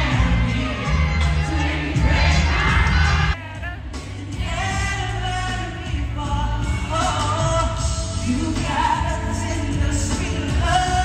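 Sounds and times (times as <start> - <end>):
backing track with heavy bass: 0.0 - 11.0
person singing: 0.0 - 11.0.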